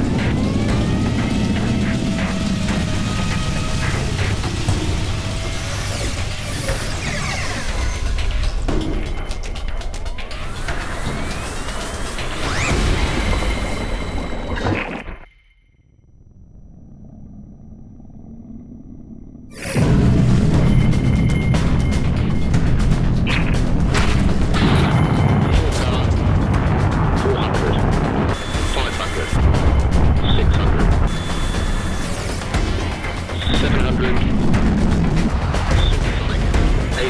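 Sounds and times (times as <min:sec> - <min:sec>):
rocket engine roar: 0:00.0 - 0:08.2, 0:16.0 - 0:37.0
music: 0:00.0 - 0:15.2, 0:19.5 - 0:37.0.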